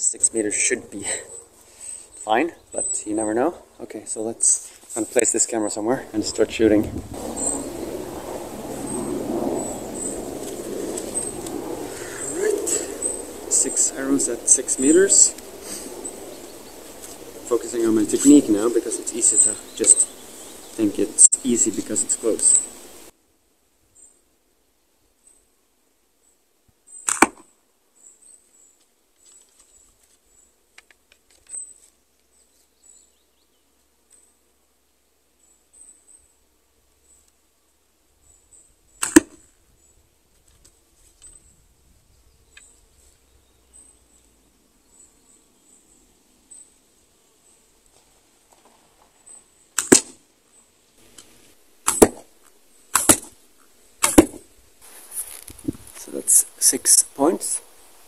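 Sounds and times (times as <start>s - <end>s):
bow shot crack: 27.0s - 27.5s, 39.0s - 39.4s, 49.8s - 50.2s, 51.1s - 52.3s, 52.9s - 53.4s, 54.0s - 54.5s.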